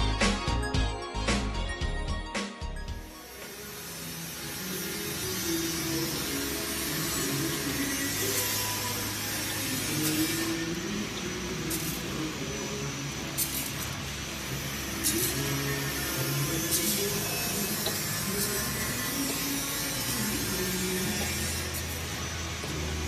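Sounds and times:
music: 0:00.0 - 0:23.0
packing machine hum and hiss: 0:03.2 - 0:23.0.

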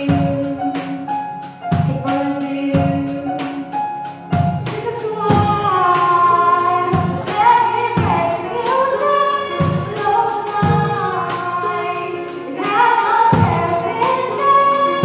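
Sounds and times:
woman singing pop song: 0:00.0 - 0:03.8, 0:04.7 - 0:15.0
electronic keyboard: 0:00.0 - 0:15.0
grand piano: 0:00.0 - 0:15.0.

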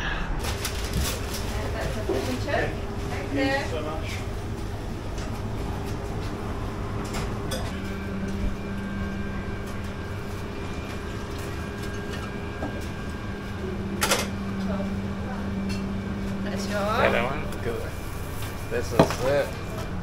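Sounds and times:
kitchen equipment humming: 0:00.0 - 0:20.0
second hum tone: 0:00.0 - 0:20.0.

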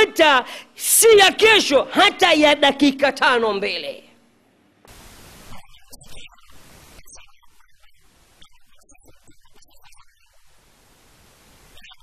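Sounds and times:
recording hiss: 0:04.6 - 0:07.0, 0:10.4 - 0:11.8.

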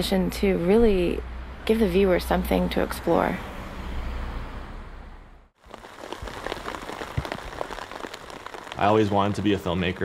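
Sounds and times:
rain pattering in forest: 0:05.6 - 0:10.0.

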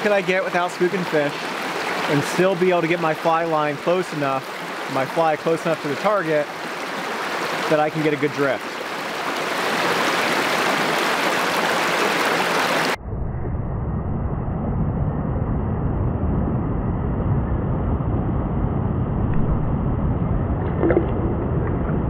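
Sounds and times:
stream running over rocks: 0:00.0 - 0:13.0
muffled water rumbling: 0:12.8 - 0:22.0.

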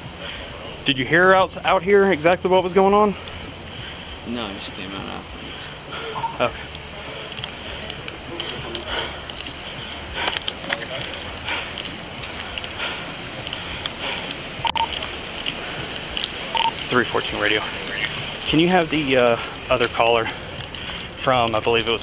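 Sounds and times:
footsteps: 0:05.4 - 0:21.6
short beeps: 0:06.2 - 0:06.5, 0:14.6 - 0:14.9, 0:16.6 - 0:16.8.

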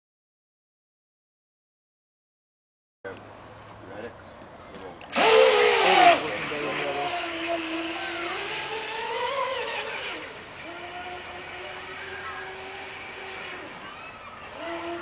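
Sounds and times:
rc boat motor whine: 0:05.1 - 0:15.0.

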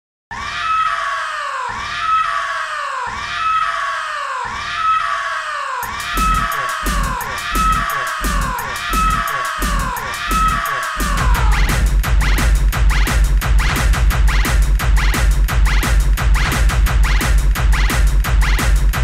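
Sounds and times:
deep kick drum: 0:06.2 - 0:19.0.

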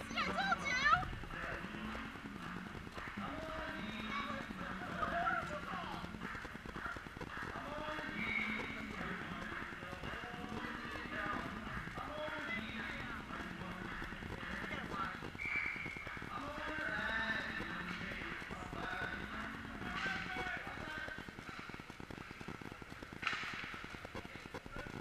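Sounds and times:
echoing indistinct voices: 0:00.0 - 0:25.0.

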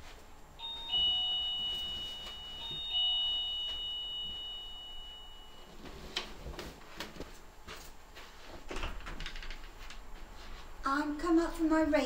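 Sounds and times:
doorbell ding-dong chime: 0:00.6 - 0:05.8.

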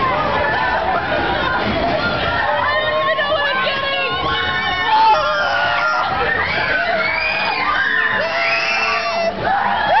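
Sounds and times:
crowd screaming and whooping: 0:00.0 - 0:10.0.

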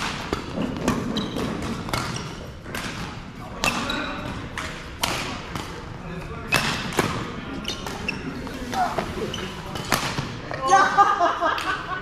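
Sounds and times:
shoes squeaking on court floor: 0:00.0 - 0:04.8, 0:06.2 - 0:10.6
rackets hitting shuttlecock: 0:00.0 - 0:08.8, 0:09.6 - 0:10.6.

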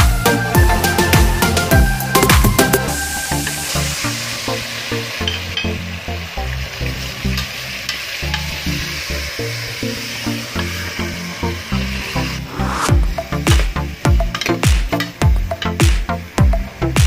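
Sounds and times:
electronic music with bass line: 0:00.0 - 0:04.7, 0:10.8 - 0:17.0
meat sizzling in oil: 0:00.1 - 0:17.0.

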